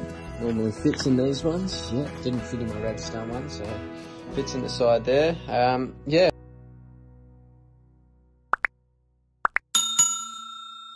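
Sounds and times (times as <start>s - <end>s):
bell ding: 9.8s - 10.9s.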